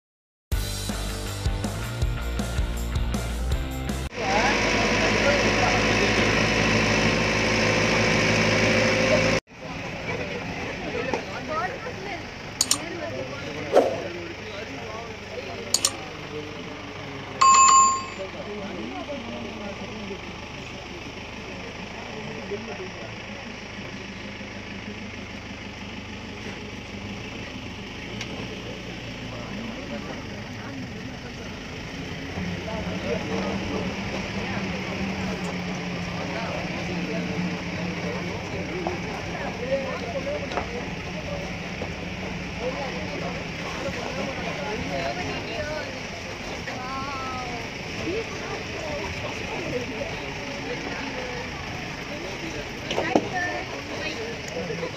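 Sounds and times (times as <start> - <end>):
low engine hum: 0.8 - 54.9
murmur of people talking: 4.0 - 54.9
bright bell ding: 17.4 - 18.4.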